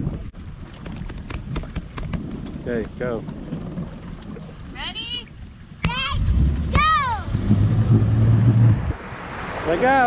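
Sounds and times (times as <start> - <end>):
motorboat engine rumbling: 0.0 - 10.0.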